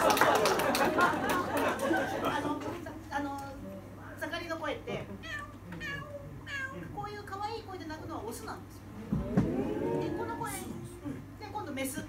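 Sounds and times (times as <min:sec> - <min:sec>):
overlapping conversational voices: 0:00.7 - 0:12.0.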